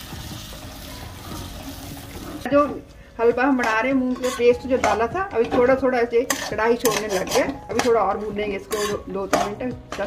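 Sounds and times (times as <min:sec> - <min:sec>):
spatula stirring: 0:03.6 - 0:10.0.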